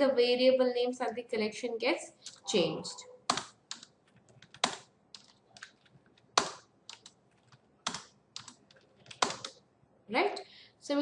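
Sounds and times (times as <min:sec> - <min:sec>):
keyboard keystrokes: 0:03.3 - 0:09.6.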